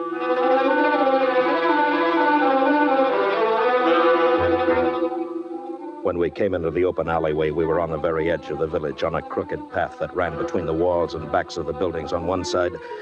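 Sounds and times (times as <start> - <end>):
orchestral music with bowed strings: 0.0 - 13.0.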